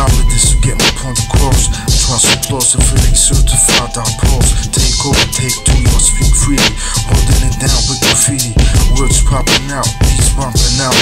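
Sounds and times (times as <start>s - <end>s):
drum and hi-hat hits: 0.0s - 11.0s
rapping over a beat: 0.0s - 11.0s.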